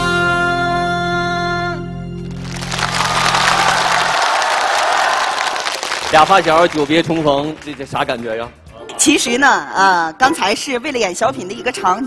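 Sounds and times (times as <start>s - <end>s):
studio audience applauding: 2.3s - 8.6s.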